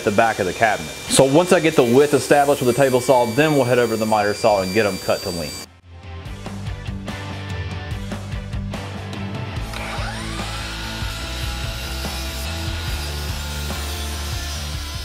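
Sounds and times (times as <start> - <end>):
miter saw cutting wood: 0.0 - 5.7, 9.6 - 15.0
background music: 5.8 - 15.0.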